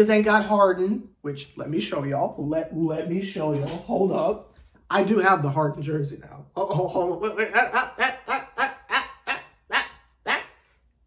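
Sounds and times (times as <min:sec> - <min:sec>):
man laughing: 0:06.6 - 0:10.6.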